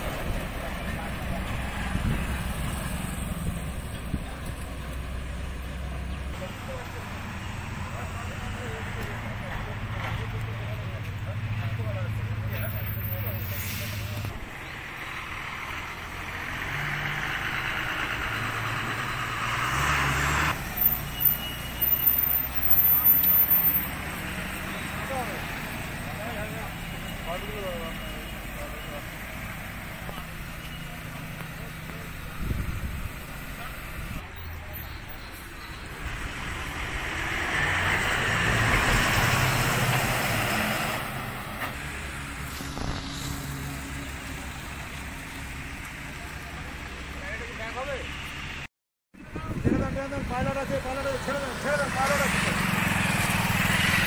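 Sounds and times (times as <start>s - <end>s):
highway traffic passing: 0.0s - 54.0s.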